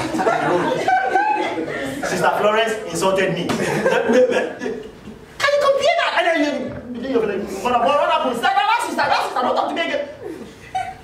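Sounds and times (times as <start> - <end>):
person speaking: 5.4 - 10.5.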